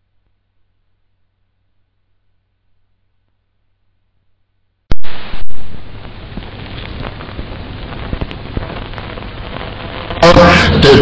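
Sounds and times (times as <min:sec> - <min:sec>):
crackling hiss with clicks: 0:00.0 - 0:11.0.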